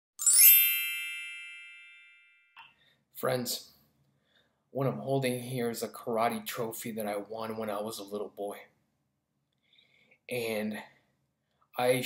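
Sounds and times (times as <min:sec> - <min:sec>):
bright chime ringing: 0:00.2 - 0:02.6.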